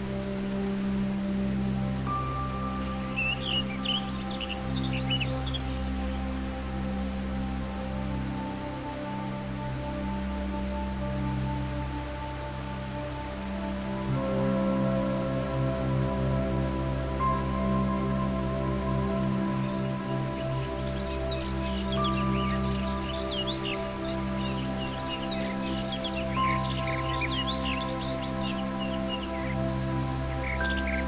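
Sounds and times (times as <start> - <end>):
new-age synth music: 0.0 - 31.0
high birdsong chirping: 2.1 - 6.3, 17.3 - 31.0.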